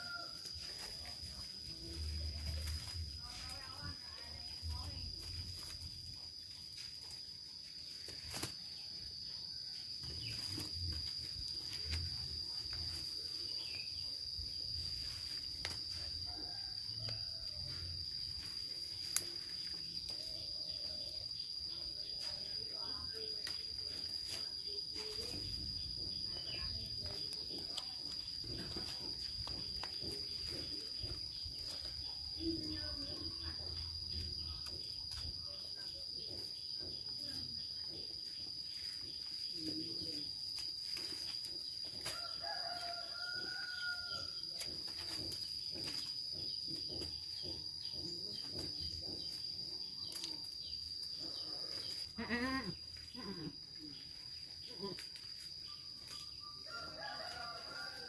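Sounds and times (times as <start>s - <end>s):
rooster crowing: 0.0s - 0.6s, 16.2s - 18.0s, 42.0s - 44.6s, 56.6s - 58.0s
high-pitched insect drone: 0.0s - 58.0s.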